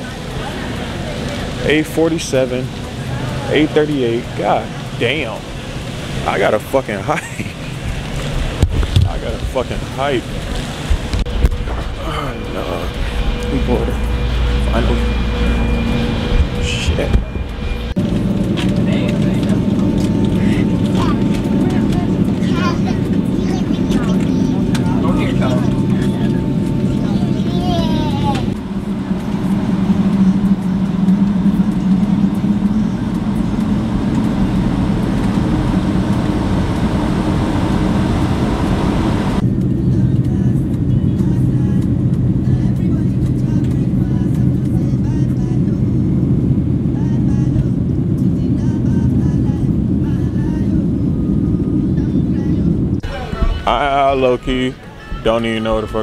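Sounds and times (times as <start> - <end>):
jet airliner cabin drone: 0.0 - 56.0.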